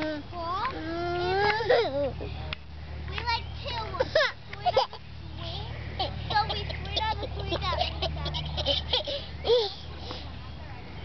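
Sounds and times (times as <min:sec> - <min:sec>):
toddler wordless vocalizing: 0:00.0 - 0:02.3.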